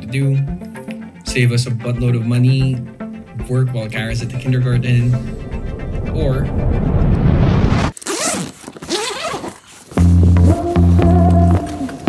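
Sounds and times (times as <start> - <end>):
loud low rumble: 2.4 - 7.9
zipper rasping open: 8.0 - 9.7.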